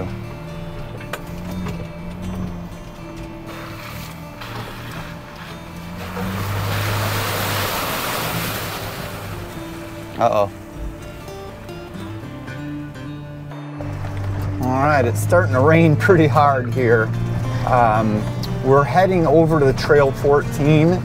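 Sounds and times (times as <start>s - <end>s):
engine running low: 0.0s - 21.0s
water splashing against vehicle: 0.1s - 12.5s.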